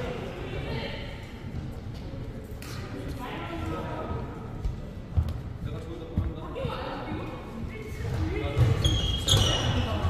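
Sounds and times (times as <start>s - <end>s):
background chatter in echoing hall: 0.0s - 10.0s.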